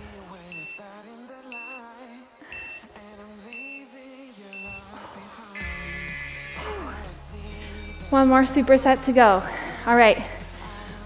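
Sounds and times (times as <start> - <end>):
pop music with singing: 0.0 - 11.0
long timer tone: 0.5 - 0.8, 1.5 - 1.8, 4.6 - 4.8, 5.6 - 7.0
short high timer beeps: 0.5 - 0.8, 1.5 - 1.8, 2.5 - 2.8, 4.6 - 4.8.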